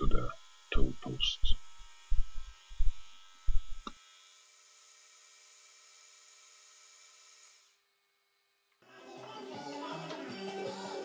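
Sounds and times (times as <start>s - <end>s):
machine whine: 0.0s - 4.4s.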